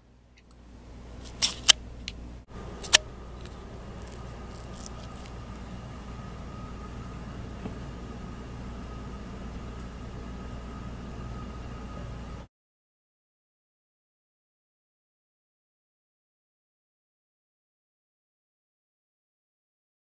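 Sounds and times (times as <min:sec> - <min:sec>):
low hum: 0:00.0 - 0:12.5
faint high tone: 0:02.5 - 0:12.5.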